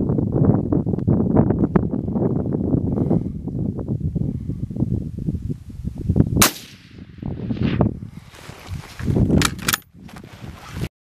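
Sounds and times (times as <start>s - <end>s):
wind buffeting microphone: 0.0s - 10.9s
rifle shot: 6.4s - 7.8s.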